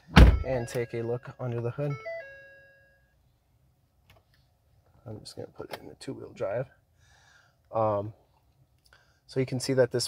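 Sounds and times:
dashboard warning chime: 0.3s - 3.2s.

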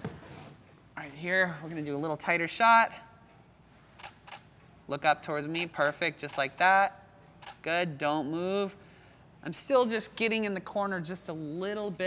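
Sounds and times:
camera shutter clicks: 4.0s - 4.5s, 7.4s - 7.6s.

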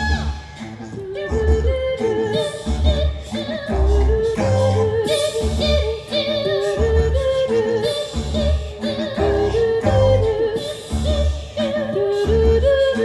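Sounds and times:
low bass pulse: 2.7s - 5.9s.

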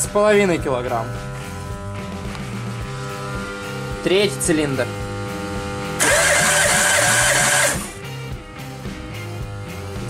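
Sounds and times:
background music: 0.0s - 10.0s
starter motor cranking engine: 6.0s - 8.0s.

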